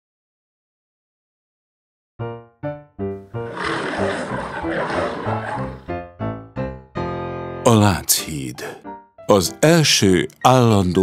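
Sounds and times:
music: 2.2s - 11.0s
lion roar: 3.4s - 5.9s.

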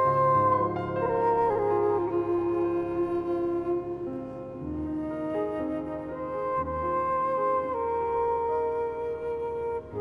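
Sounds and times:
bamboo flute long low note: 0.0s - 10.0s
soft piano accompaniment: 0.0s - 10.0s.

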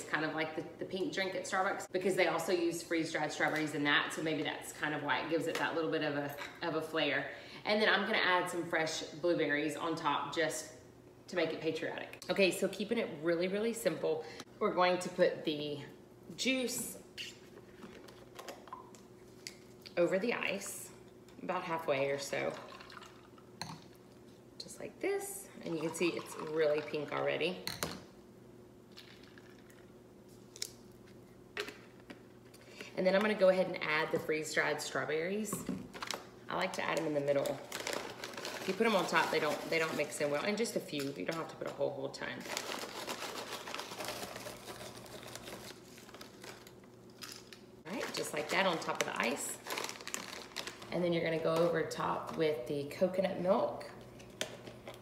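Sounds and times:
faint steady hum: 0.0s - 55.0s
plastic pouch crinkling: 36.9s - 40.2s, 42.4s - 50.9s.

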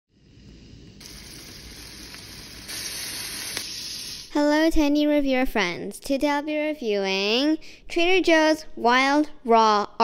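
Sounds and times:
shrimp sizzling in oil: 0.1s - 4.4s.

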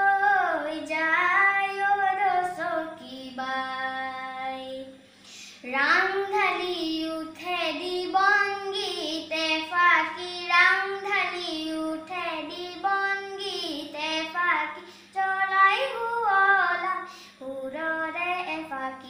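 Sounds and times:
boy singing unaccompanied: 0.0s - 5.0s, 5.6s - 19.0s.

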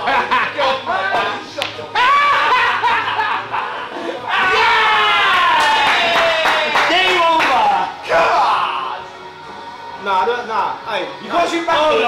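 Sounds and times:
men laughing and shouting: 0.0s - 7.0s.

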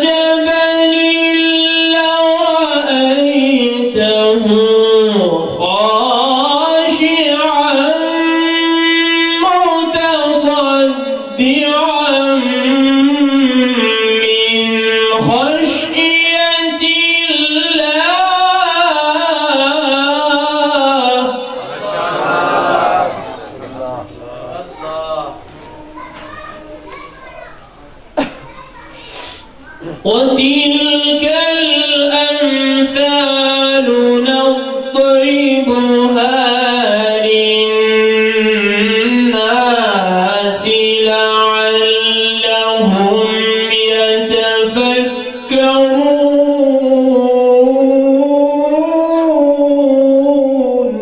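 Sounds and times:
man's voice: 0.0s - 25.6s, 29.7s - 51.0s
children chattering: 21.5s - 30.6s.

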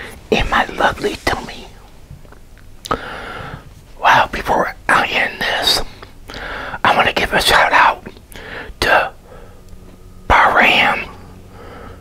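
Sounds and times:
man whispering: 0.0s - 1.9s, 4.0s - 6.1s, 6.8s - 9.3s, 10.3s - 11.3s.

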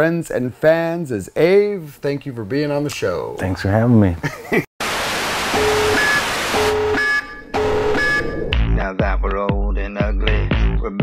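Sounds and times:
tv static hiss: 4.8s - 7.0s
low electronic tone: 5.6s - 8.8s.

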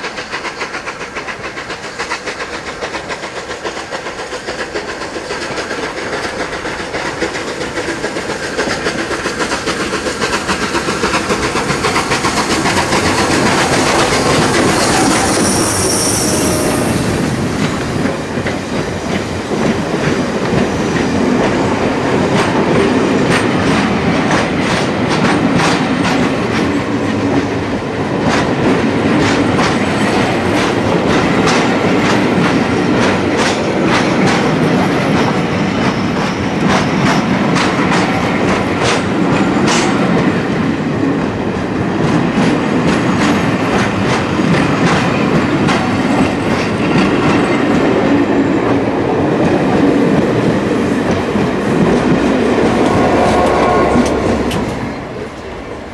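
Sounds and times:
train wheels rumbling on rail: 0.0s - 55.9s
wheels clacking over rail joints: 0.0s - 55.9s.

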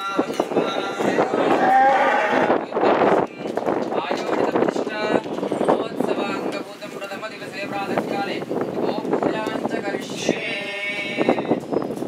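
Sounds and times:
cow mooing: 1.4s - 2.5s.

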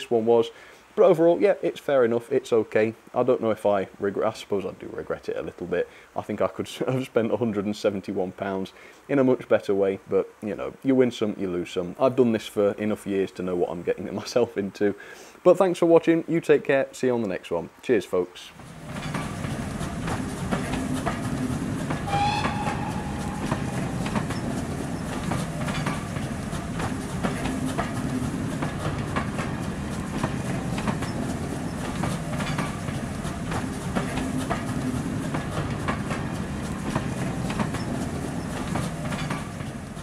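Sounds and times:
train rumbling past: 18.5s - 40.0s
wheels clacking over rail joints: 18.5s - 40.0s
short high whistle: 22.0s - 24.5s.

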